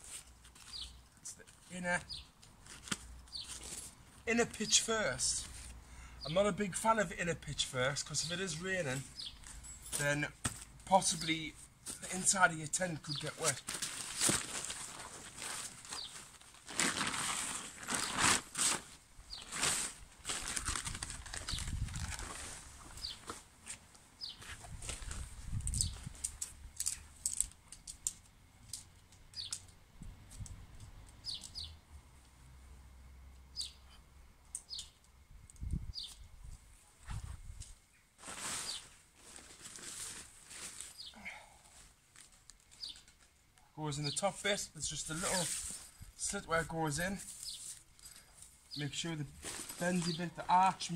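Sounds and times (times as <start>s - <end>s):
nylon tent fabric rustling: 11.9s - 26.2s, 38.2s - 43.0s, 45.0s - 48.0s, 49.3s - 50.9s
tent poles clicking together: 24.8s - 29.8s.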